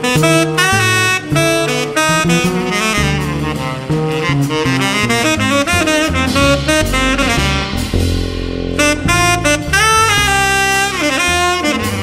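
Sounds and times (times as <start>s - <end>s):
double bass: 0.0s - 12.0s
drums: 0.0s - 12.0s
tenor saxophone: 0.0s - 12.0s.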